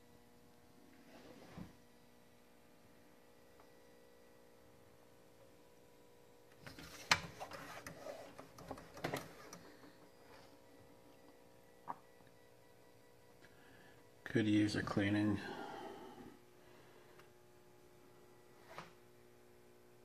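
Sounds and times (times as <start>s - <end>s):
faint steady hum: 0.0s - 20.0s
hand rubbing on pinball playfield: 6.7s - 10.6s.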